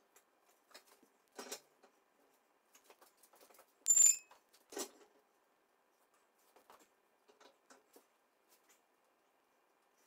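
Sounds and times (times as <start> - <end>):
metal tool clinking on concrete: 3.9 - 4.3.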